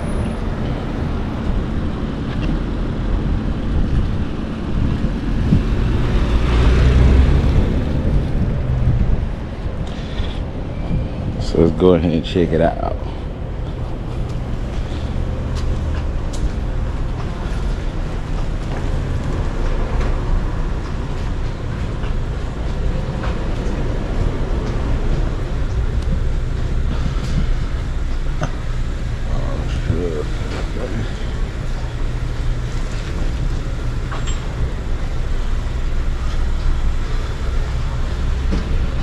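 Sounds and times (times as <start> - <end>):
low rumble of road traffic: 0.0 - 39.0
people talking: 11.4 - 13.2, 29.3 - 31.2.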